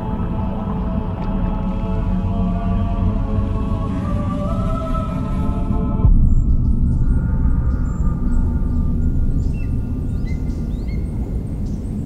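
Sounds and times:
steady low rumble: 0.0s - 12.0s
deep low boom: 6.0s - 10.8s
faint bird chirps: 6.3s - 12.0s.

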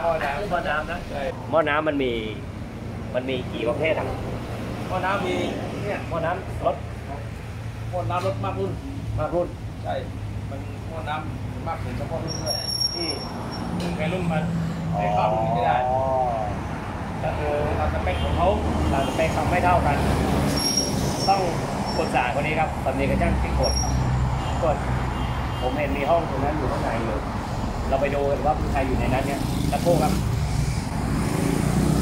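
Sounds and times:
men talking: 0.0s - 20.3s, 21.2s - 24.9s, 25.6s - 30.3s.

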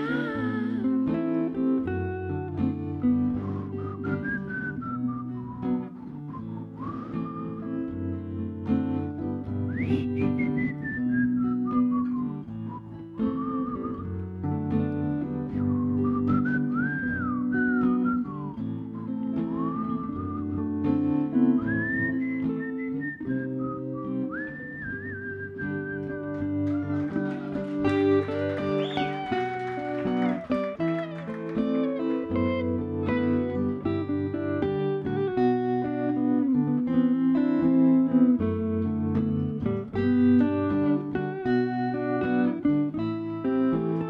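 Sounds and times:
acoustic and electric guitars: 0.0s - 44.0s
whistled melody: 3.0s - 8.4s, 9.6s - 14.2s, 15.5s - 36.6s.

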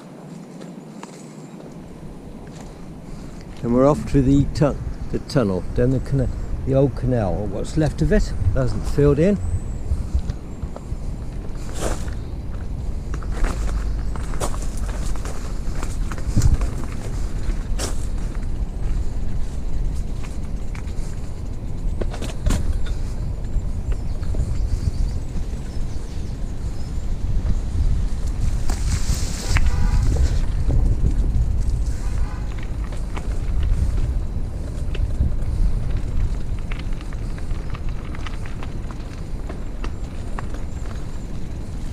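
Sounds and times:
wheels rolling over gravel: 0.0s - 41.9s.

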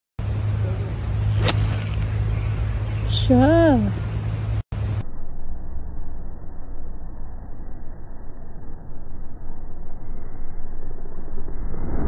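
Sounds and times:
steady low hum: 0.2s - 12.0s
golf club striking ball: 1.3s - 2.2s.

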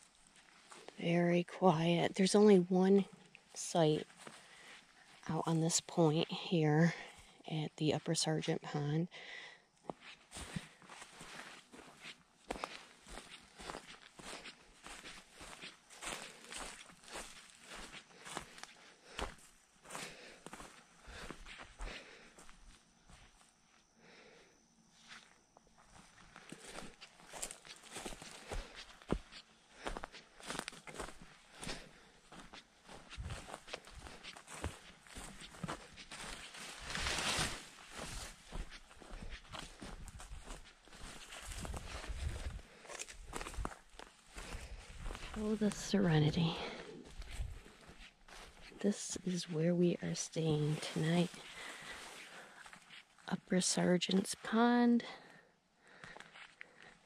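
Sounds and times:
footsteps on forest floor: 0.0s - 1.2s, 1.8s - 7.3s, 9.3s - 23.5s, 25.0s - 57.0s
leaves rustling: 32.9s - 43.7s.

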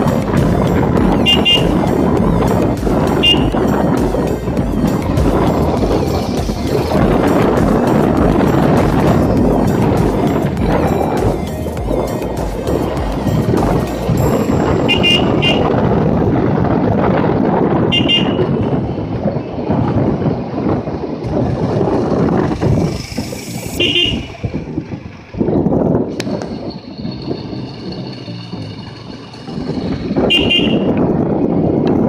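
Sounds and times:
wind rushing over microphone: 0.0s - 32.0s
short horn beeps: 1.2s - 1.8s, 3.2s - 3.6s, 14.8s - 15.8s, 23.8s - 24.4s, 30.3s - 30.9s.

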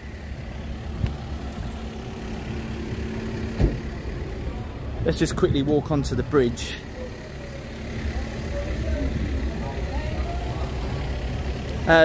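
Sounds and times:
steady low rumble: 0.0s - 11.9s.

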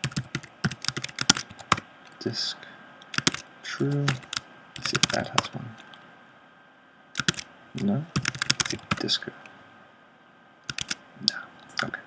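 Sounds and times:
computer keyboard keystrokes: 0.0s - 1.8s, 3.0s - 5.5s, 7.2s - 7.4s, 8.2s - 9.1s, 10.7s - 11.0s.

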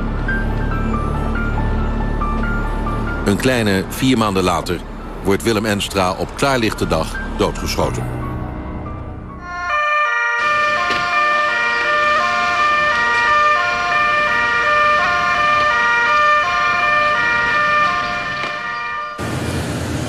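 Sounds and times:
street traffic noise: 0.0s - 20.0s
two-tone ambulance siren: 9.4s - 19.5s.

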